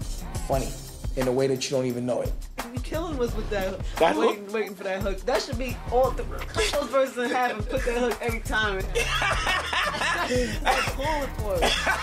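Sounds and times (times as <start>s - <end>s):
hip hop music through speakers: 0.0s - 1.6s, 2.2s - 12.0s
people laughing and snickering: 8.8s - 12.0s.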